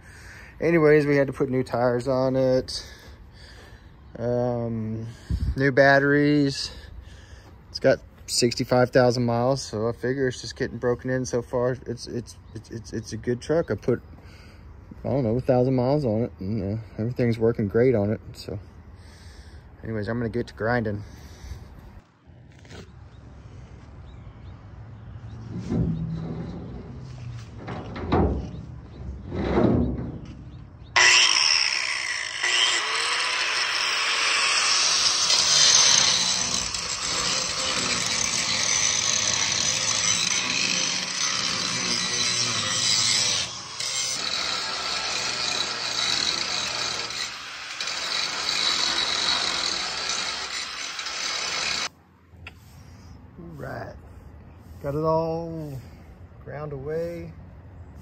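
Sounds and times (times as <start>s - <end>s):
angle grinder grinding metal: 31.0s - 51.9s.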